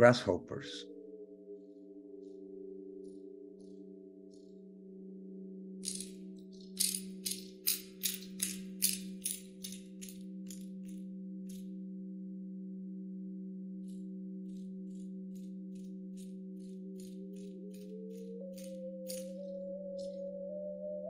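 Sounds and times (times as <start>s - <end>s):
low drone hum: 0.0s - 21.0s
grasshopper chirps: 5.8s - 11.6s, 13.9s - 20.3s.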